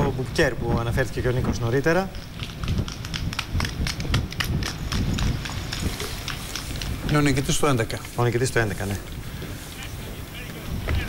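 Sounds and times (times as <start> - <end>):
running footsteps on asphalt: 0.0 - 11.0.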